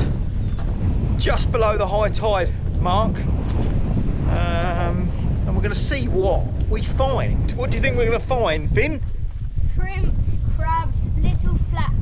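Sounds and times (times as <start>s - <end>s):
wind buffeting microphone: 0.0s - 12.0s
child speaking: 9.7s - 12.0s.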